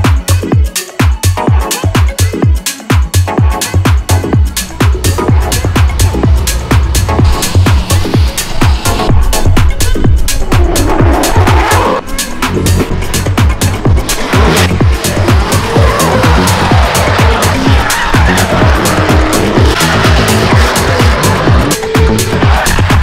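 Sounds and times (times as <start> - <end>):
electronic dance music: 0.0 - 23.0
car engines revving: 3.7 - 23.0
tyres squealing: 9.8 - 23.0.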